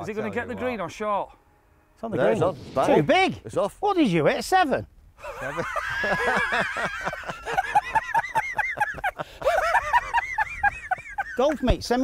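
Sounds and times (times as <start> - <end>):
men laughing hard: 5.2 - 11.8.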